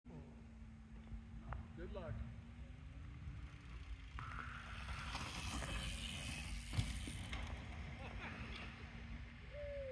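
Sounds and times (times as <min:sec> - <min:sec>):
bike tyres rolling over dirt: 0:01.2 - 0:09.6.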